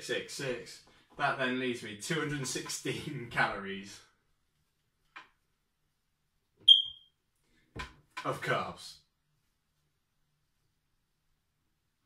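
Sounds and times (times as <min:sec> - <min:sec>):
whiteboard marker squeak: 0:06.7 - 0:07.1.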